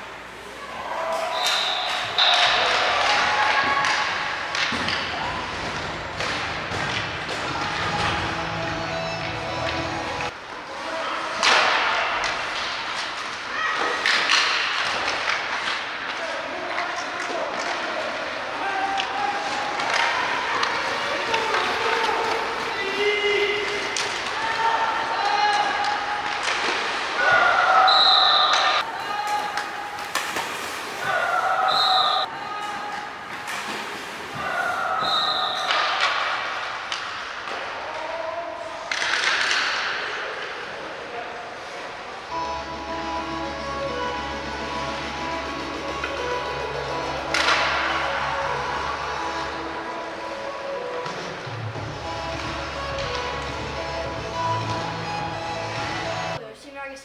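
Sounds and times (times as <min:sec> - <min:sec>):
hockey sticks and puck clacking: 0:01.0 - 0:41.1, 0:45.0 - 0:49.0, 0:50.2 - 0:56.2
players shouting: 0:18.2 - 0:30.3, 0:30.9 - 0:33.7.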